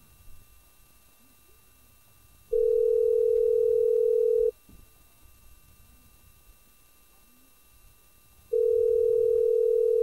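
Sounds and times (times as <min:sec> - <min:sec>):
telephone ringback tone: 0:02.5 - 0:04.5, 0:08.5 - 0:10.0.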